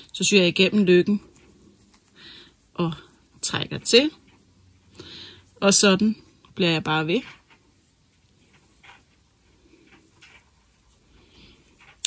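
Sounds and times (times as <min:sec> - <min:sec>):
faint rustles of sewing: 0:00.0 - 0:12.0.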